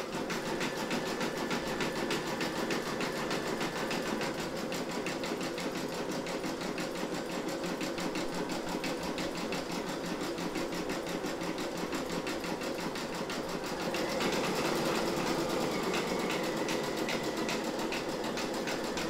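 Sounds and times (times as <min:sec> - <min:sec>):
embroidery machine stitching: 0:00.0 - 0:19.0.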